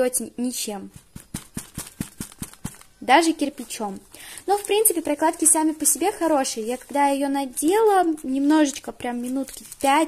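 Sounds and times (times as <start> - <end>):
fingers tapping on stiff pad: 1.0 - 2.8.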